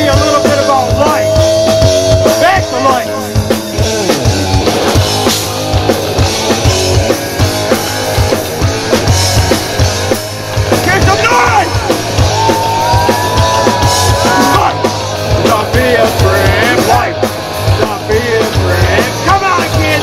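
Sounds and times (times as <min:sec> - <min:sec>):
person's voice: 0:00.0 - 0:03.3, 0:10.8 - 0:11.8, 0:17.8 - 0:20.0
punk rock band playing: 0:00.0 - 0:20.0.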